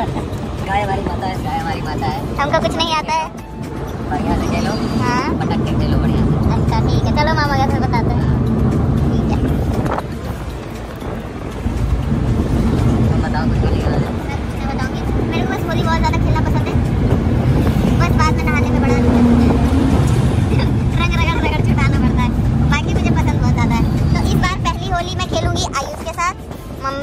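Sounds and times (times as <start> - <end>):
car cabin road rumble: 0.0 - 27.0
voices talking: 0.0 - 27.0.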